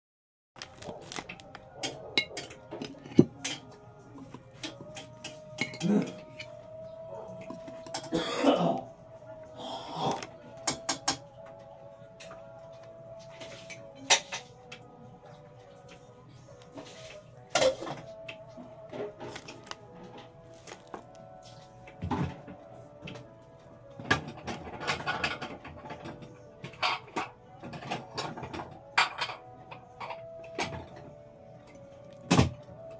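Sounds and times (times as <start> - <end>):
small clicks and rustles of food handling: 0.6 - 2.0, 18.1 - 21.9
person clearing throat: 5.8 - 6.3, 8.0 - 8.9.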